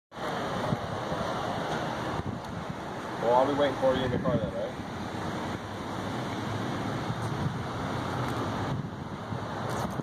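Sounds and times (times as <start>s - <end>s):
wind buffeting microphone: 0.3s - 10.0s.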